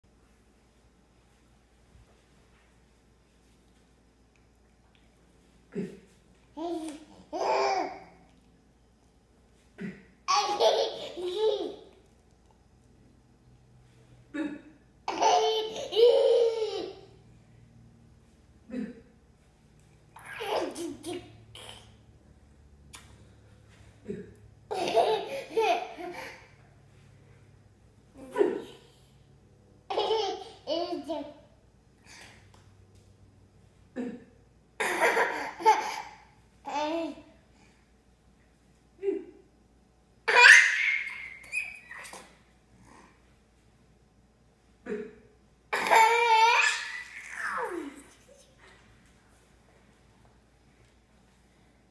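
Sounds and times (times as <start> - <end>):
toddler laughing: 6.6 - 8.2, 10.3 - 12.0, 15.1 - 17.1, 20.2 - 21.9, 24.7 - 26.5, 29.9 - 31.4, 34.8 - 37.2, 40.3 - 42.4, 45.8 - 48.7
toddler squealing laugh: 40.3 - 42.3, 45.8 - 48.0.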